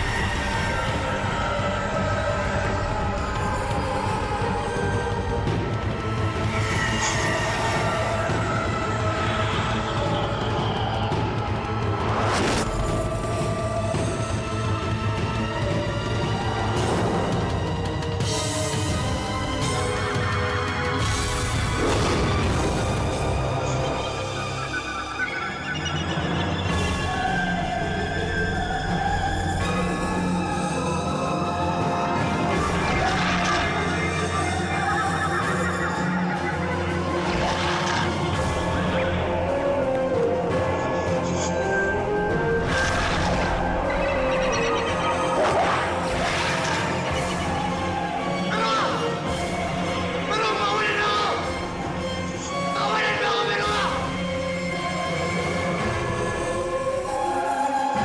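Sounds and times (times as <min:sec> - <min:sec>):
ominous musical score: 0:00.0 - 0:58.0.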